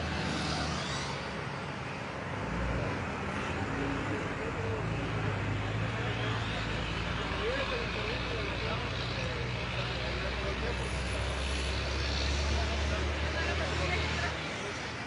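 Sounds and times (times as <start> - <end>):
traffic noise: 0.0 - 15.0
vehicle engines idling: 0.0 - 15.0.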